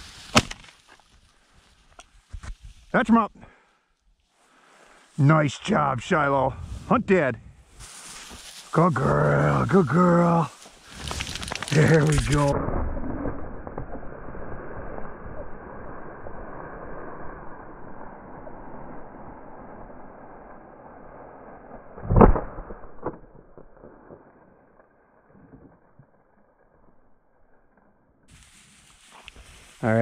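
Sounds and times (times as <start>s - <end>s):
rushing rustling noise: 0.0s - 2.9s, 7.6s - 15.0s, 28.3s - 30.0s.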